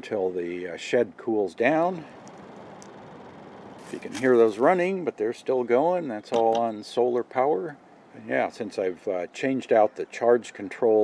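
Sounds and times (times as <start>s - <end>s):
ventilation fan air rush: 1.2s - 5.2s.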